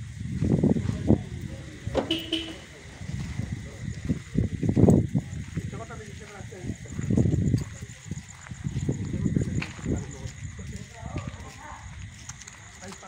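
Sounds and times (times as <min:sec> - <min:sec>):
indistinct voices: 0:00.4 - 0:13.0.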